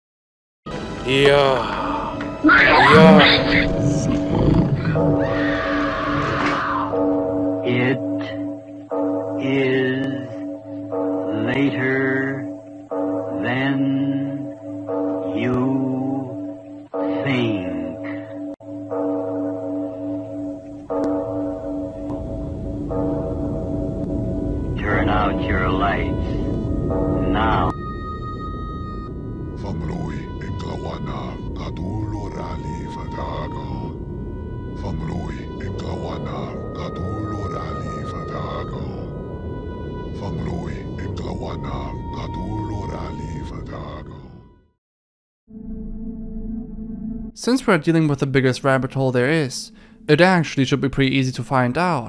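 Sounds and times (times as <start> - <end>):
warped gliding voice-like moans: 1.4 - 7.0, 34.6 - 39.3
dense low rumble: 3.3 - 5.3, 22.0 - 44.0.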